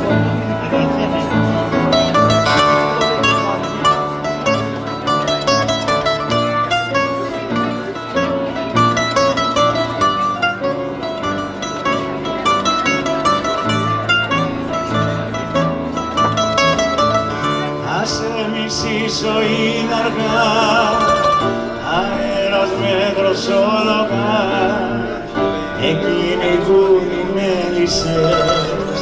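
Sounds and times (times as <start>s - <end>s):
plucked string instruments playing: 0.0s - 29.0s.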